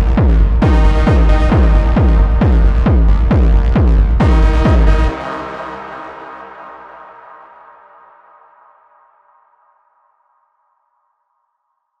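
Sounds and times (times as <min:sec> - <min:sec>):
techno synthesizer tone: 0:00.0 - 0:08.8.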